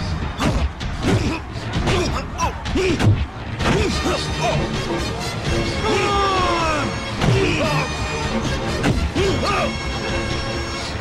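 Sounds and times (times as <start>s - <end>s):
background film score: 0.0s - 11.0s.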